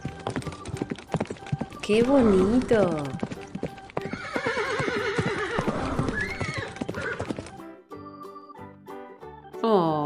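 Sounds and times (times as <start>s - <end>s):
horse hooves clip-clopping: 0.0s - 7.7s
horse whinny: 2.0s - 2.8s, 4.0s - 7.4s.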